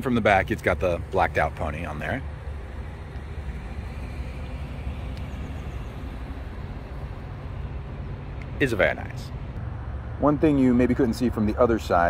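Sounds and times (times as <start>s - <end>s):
outdoor background noise: 0.0s - 12.0s
vehicle engines rumbling: 0.0s - 12.0s.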